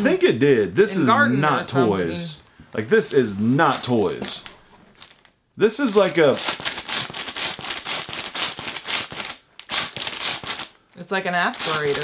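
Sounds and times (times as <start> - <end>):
plastic bag crinkling: 3.7 - 5.4, 11.5 - 12.0.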